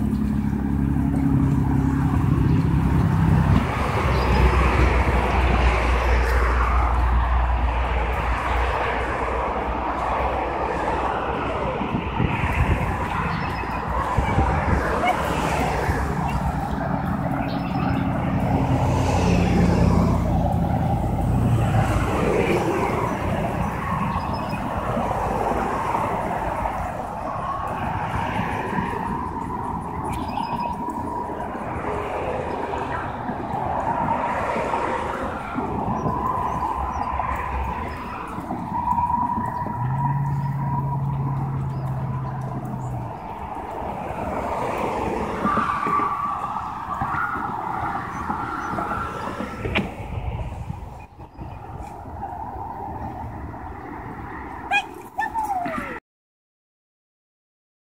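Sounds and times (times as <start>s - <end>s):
road traffic passing cars: 0.0s - 56.0s.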